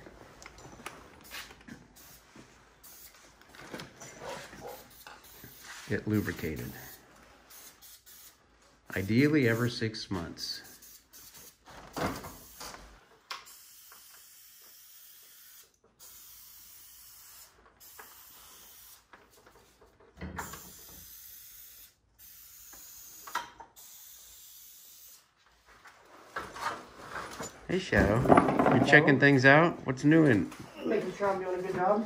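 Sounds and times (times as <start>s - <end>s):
aerosol can spraying: 4.6s - 9.7s, 10.4s - 11.6s, 13.4s - 19.4s.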